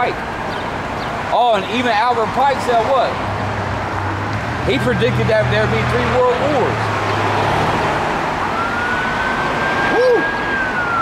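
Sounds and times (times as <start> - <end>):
road traffic noise: 0.0 - 11.0
emergency vehicle siren wailing: 4.7 - 11.0.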